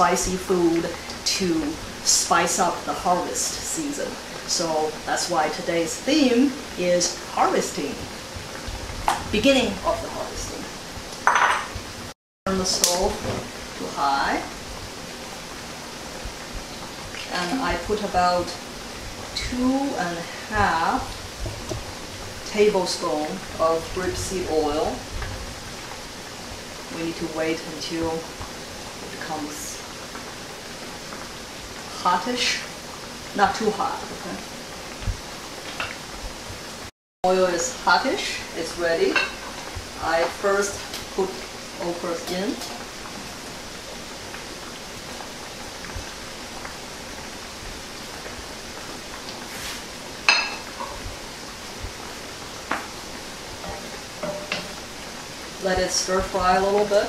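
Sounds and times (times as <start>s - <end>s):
okra frying in oil: 0.0s - 57.0s.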